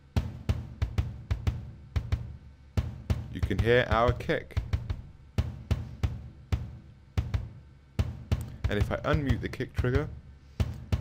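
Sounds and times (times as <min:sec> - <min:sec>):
kick drum hits: 0:00.0 - 0:11.0.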